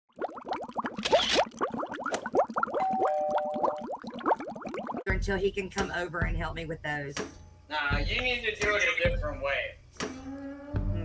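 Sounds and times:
bubbly blips: 0:00.1 - 0:05.1.

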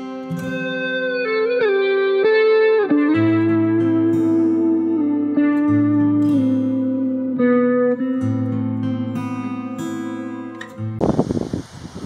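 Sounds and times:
acoustic guitar music: 0:00.0 - 0:12.0
wind noise on microphone: 0:11.0 - 0:12.0.

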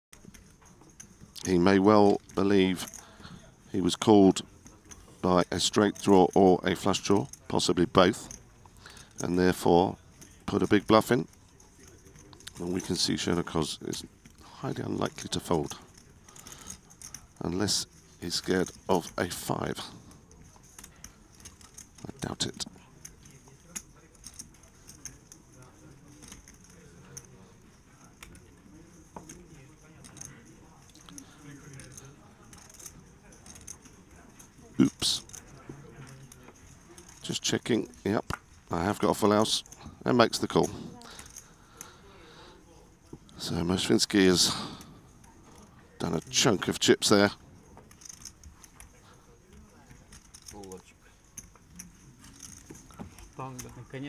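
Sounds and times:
faint murmur of voices: 0:00.2 - 0:54.0.

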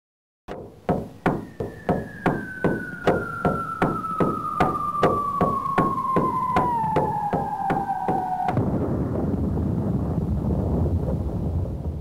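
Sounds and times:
sharp synthesized knocks: 0:00.5 - 0:08.6
whistling tone falling in pitch: 0:00.6 - 0:08.6.

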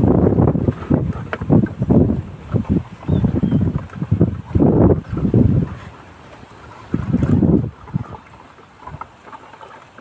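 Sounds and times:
wind on microphone: 0:00.0 - 0:09.4.

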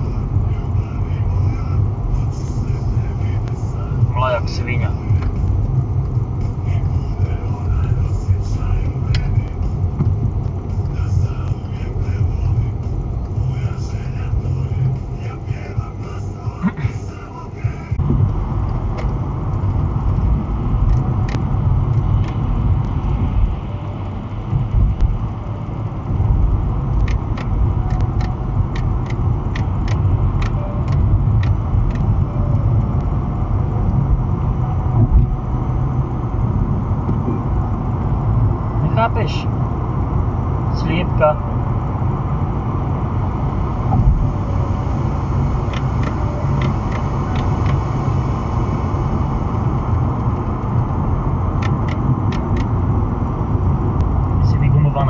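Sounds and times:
car road noise rumble: 0:00.0 - 0:55.0
light ticks: 0:02.7 - 0:03.6, 0:05.0 - 0:33.2, 0:45.7 - 0:47.8, 0:51.6 - 0:52.8.

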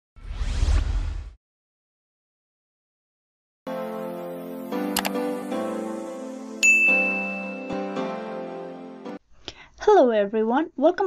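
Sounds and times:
whoosh with deep rumble: 0:00.2 - 0:01.4.

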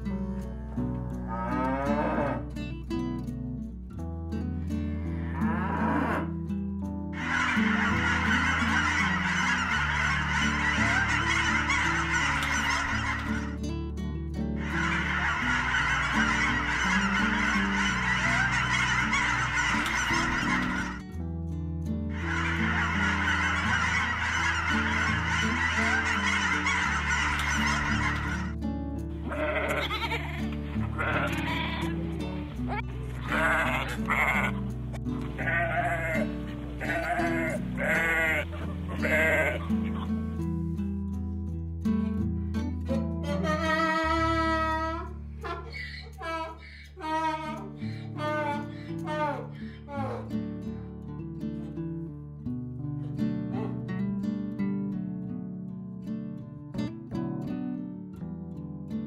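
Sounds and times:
soft background music: 0:00.0 - 0:52.0
ducks quacking: 0:07.2 - 0:13.6, 0:14.6 - 0:21.0, 0:22.1 - 0:28.6, 0:29.3 - 0:40.3, 0:43.2 - 0:50.3
goat bleating: 0:29.2 - 0:32.1, 0:32.7 - 0:40.1, 0:43.2 - 0:50.3.

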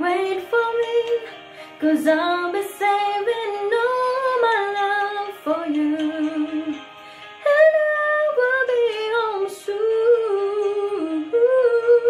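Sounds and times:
woman singing into microphone: 0:00.0 - 0:06.8, 0:07.4 - 0:12.0.

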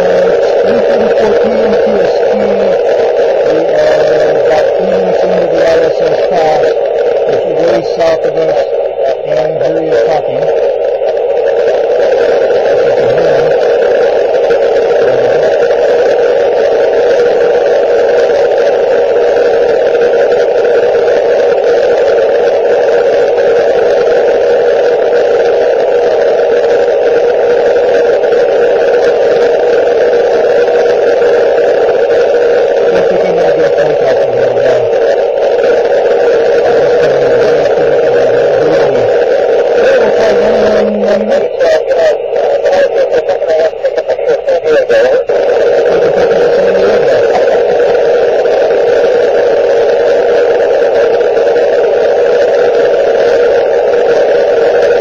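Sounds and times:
loud radio static hiss: 0:00.0 - 0:55.0.

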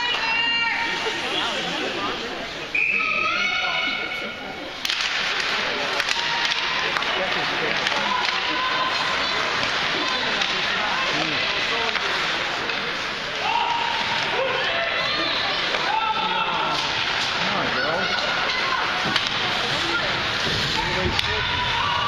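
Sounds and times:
loud arena noise: 0:00.0 - 0:22.0
spectators calling and talking: 0:00.0 - 0:22.0
hockey sticks clacking: 0:04.8 - 0:14.8, 0:15.4 - 0:22.0.

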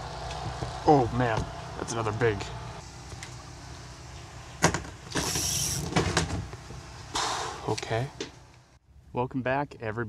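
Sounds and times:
spinning reel whirring: 0:05.2 - 0:05.9.

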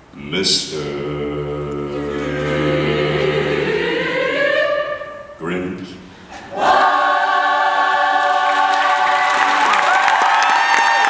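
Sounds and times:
choir holding a chord: 0:00.7 - 0:05.7, 0:06.4 - 0:09.8
audience applause: 0:08.2 - 0:11.0
cheering and whistles: 0:08.7 - 0:11.0.

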